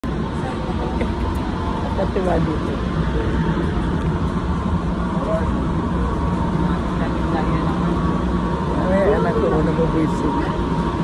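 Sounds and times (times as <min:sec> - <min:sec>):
train carriage rumble: 0:00.0 - 0:11.0.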